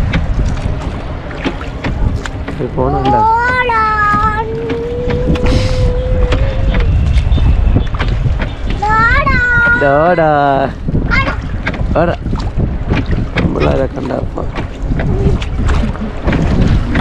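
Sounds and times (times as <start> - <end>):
steady low rumble: 0.0 - 17.0.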